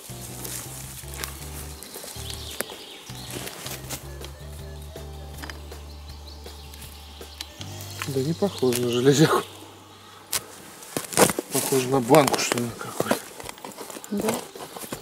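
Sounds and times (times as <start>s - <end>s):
rustling clicks on forest floor: 0.0s - 15.0s.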